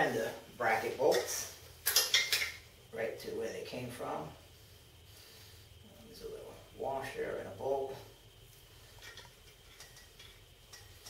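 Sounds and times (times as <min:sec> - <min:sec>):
metal tools clinking: 0:09.0 - 0:11.0.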